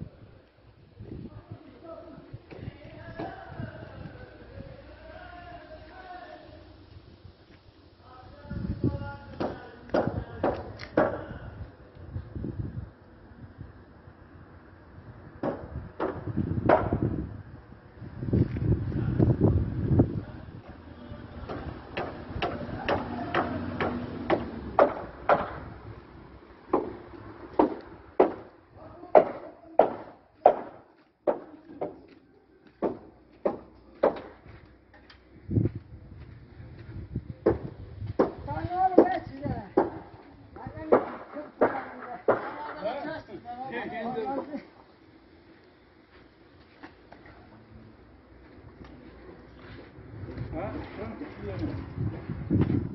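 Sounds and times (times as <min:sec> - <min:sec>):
men talking: 0:01.1 - 0:06.8, 0:08.0 - 0:11.7, 0:20.1 - 0:24.6, 0:38.4 - 0:45.0, 0:50.4 - 0:52.3
sharp knocking blows: 0:09.4 - 0:11.3, 0:15.4 - 0:17.1, 0:21.4 - 0:25.7, 0:26.7 - 0:28.5, 0:29.1 - 0:32.0, 0:32.8 - 0:34.4, 0:37.4 - 0:40.1, 0:40.8 - 0:42.7.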